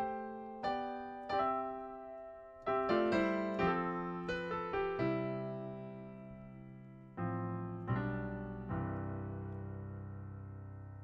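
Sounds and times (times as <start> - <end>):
slow piano ballad: 0.0 - 11.0.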